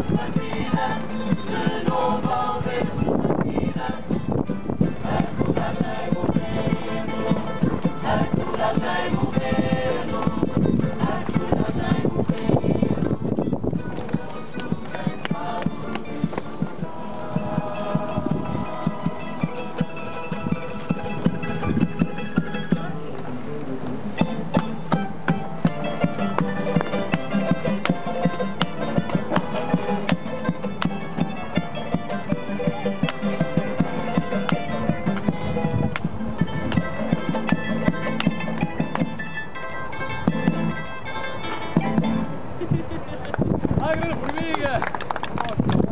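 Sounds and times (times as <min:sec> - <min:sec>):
group singing: 0:00.0 - 0:20.0, 0:32.6 - 0:35.9
acoustic string ensemble playing: 0:00.0 - 0:45.9
drum beaten with sticks: 0:24.2 - 0:39.2, 0:40.2 - 0:40.7.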